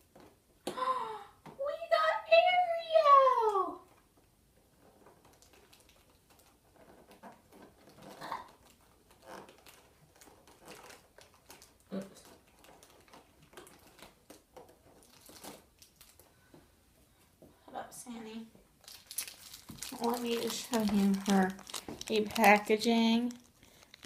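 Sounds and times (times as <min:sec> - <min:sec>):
small plastic figures handled: 0:04.7 - 0:16.3, 0:18.8 - 0:24.0
cardboard clicks and rustles: 0:04.8 - 0:16.3.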